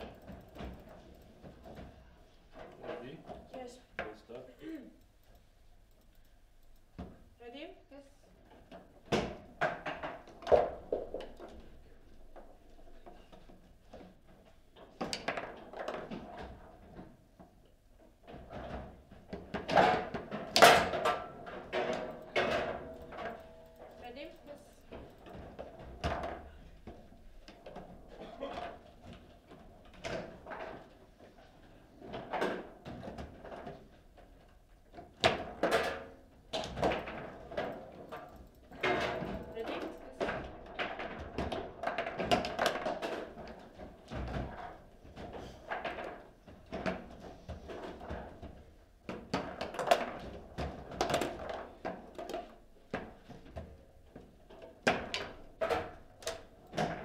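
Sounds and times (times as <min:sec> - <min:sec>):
table football knocks and clacks: 0:06.8 - 0:07.3, 0:08.4 - 0:57.0.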